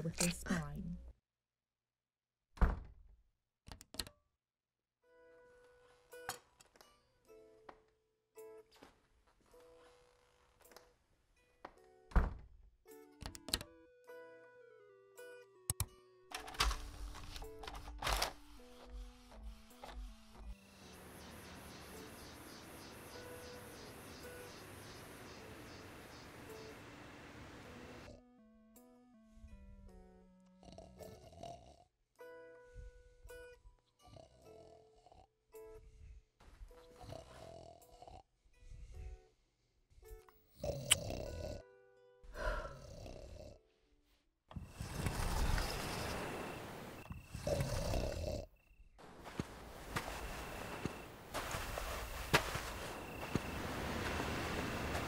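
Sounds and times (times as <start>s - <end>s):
man snoring: 30.6s - 31.9s, 37.0s - 38.3s, 40.5s - 41.7s, 42.4s - 43.6s, 44.6s - 48.5s.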